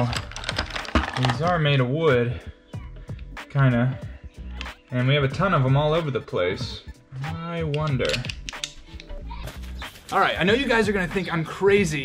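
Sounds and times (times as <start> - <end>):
wooden pencils clattering: 0.0 - 1.6
background music: 0.0 - 12.0.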